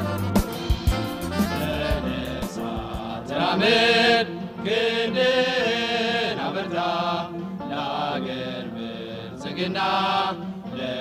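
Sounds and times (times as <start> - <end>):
voices singing chant-like notes: 0.0 - 11.0.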